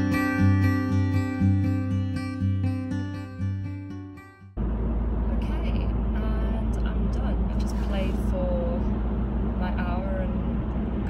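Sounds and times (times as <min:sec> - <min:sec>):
car cabin engine and road rumble: 0:04.6 - 0:11.0.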